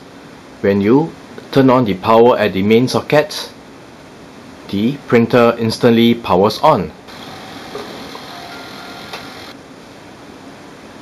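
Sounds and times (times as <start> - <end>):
printer mechanical whir: 7.1 - 9.6.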